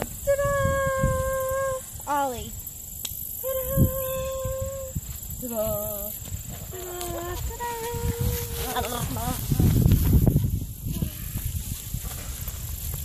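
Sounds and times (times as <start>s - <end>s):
person singing long notes: 3.4s - 9.4s.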